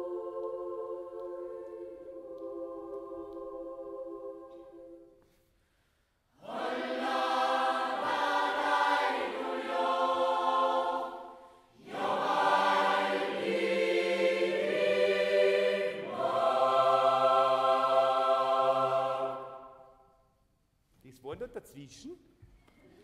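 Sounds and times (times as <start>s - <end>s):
choir singing: 0.0s - 5.2s, 6.3s - 20.2s.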